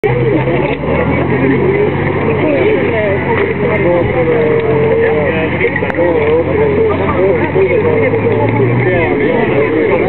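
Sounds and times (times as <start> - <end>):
crowd voices chattering: 0.0 - 10.0
low engine hum: 0.0 - 10.0.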